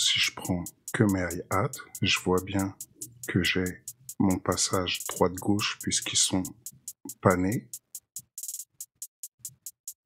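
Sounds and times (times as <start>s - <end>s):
drum machine hi-hats ticking: 0.0s - 10.0s.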